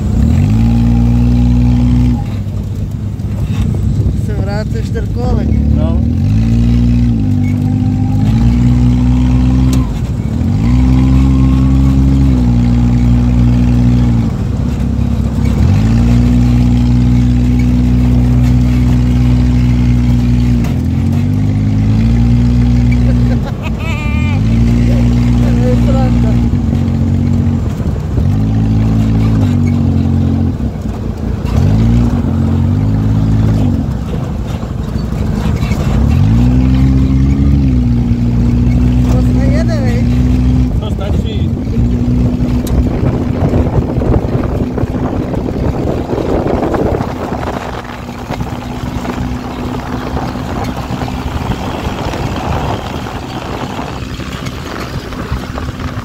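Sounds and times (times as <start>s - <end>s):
small engine revving: 0.0s - 56.0s.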